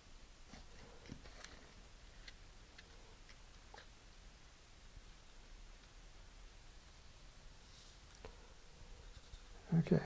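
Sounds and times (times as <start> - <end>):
faint ticks and rustles: 6.8 - 10.0.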